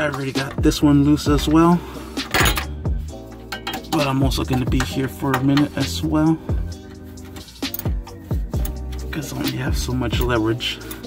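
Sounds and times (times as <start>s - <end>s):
background music with steady beat: 0.0s - 11.0s
metallic ratchet clinks: 7.4s - 9.0s.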